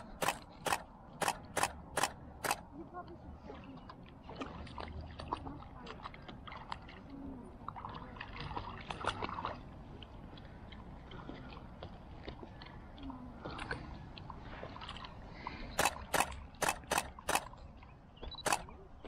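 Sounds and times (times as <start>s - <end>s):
dogs splashing in water: 4.2s - 10.0s.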